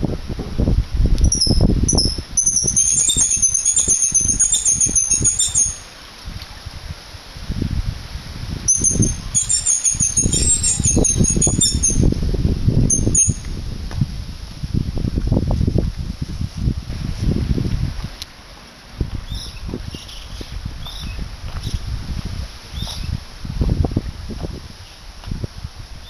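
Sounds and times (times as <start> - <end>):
wind buffeting microphone: 0.0 - 26.0
high wavering squeal: 1.2 - 6.0, 8.7 - 12.2, 12.8 - 13.6.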